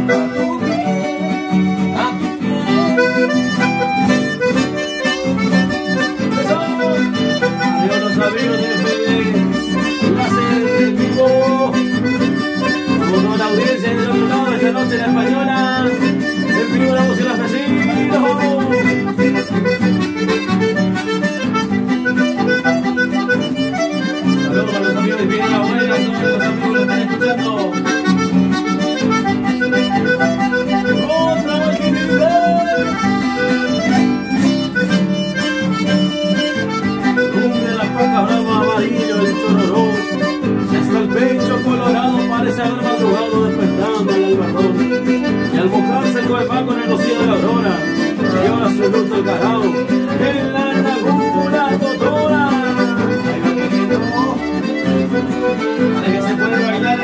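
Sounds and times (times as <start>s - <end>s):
accordion melody: 0.0s - 57.0s
strummed and plucked guitars: 0.0s - 57.0s.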